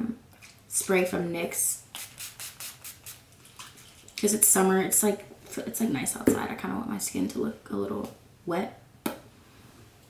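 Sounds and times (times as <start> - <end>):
spray bottle spritzes: 1.9 - 3.2.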